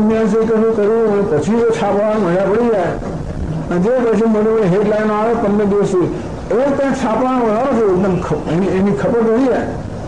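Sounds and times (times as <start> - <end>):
man speaking: 0.0 - 3.1, 3.7 - 9.8.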